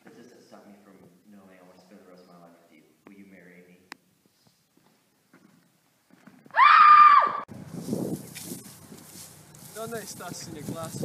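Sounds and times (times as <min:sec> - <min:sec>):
high-pitched scream: 0:06.5 - 0:07.5
wind noise: 0:07.5 - 0:11.0.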